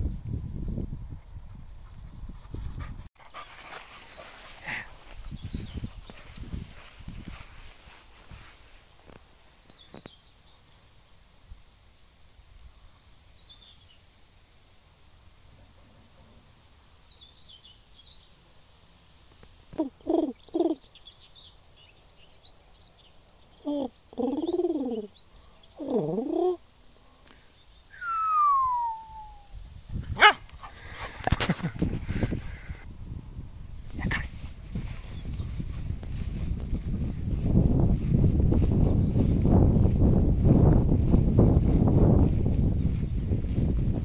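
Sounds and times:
songbirds chirping: 3.2 - 11.4, 12.5 - 29.5, 33.9 - 36.3, 38.0 - 40.1
low hooting sounds: 27.9 - 29.5
dog yipping: 30.2 - 30.4.

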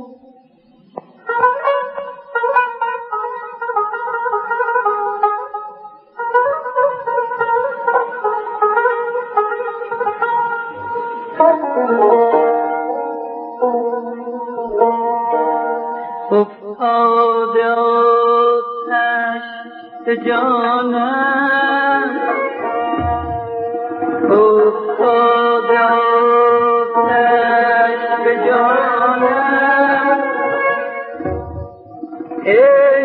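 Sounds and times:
plucked string instrumental music: 0.0 - 33.0.

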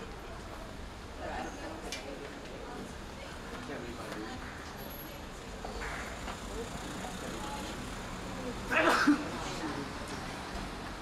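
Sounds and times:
people's voices: 0.0 - 11.0
traffic hum: 4.5 - 11.0.

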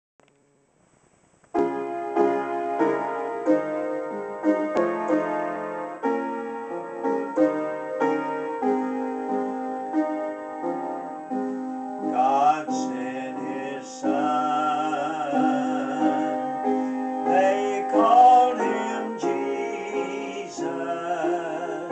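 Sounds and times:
piano chords: 1.4 - 21.9.

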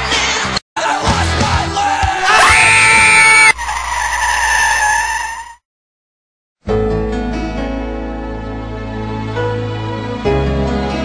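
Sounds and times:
person yelling: 2.2 - 3.5.

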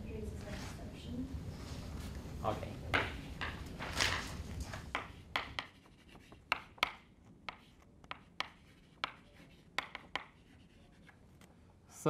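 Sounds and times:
chalk tapping on blackboard: 4.8 - 11.2.

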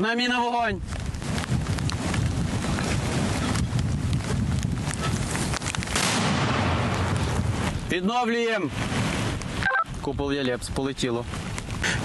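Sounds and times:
wind noise on microphone: 0.0 - 12.0
mortar firing: 5.8 - 8.1.

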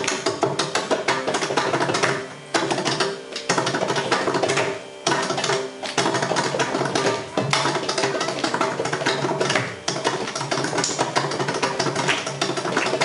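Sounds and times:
mridangam drumming: 0.0 - 13.0.

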